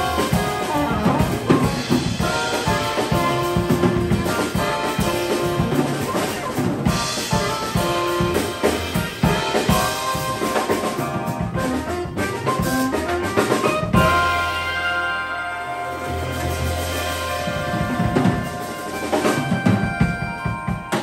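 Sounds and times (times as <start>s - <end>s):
drum kit: 0.0s - 21.0s
electric keyboard: 0.0s - 21.0s
soprano saxophone melody: 0.0s - 21.0s
upright bass: 0.0s - 21.0s.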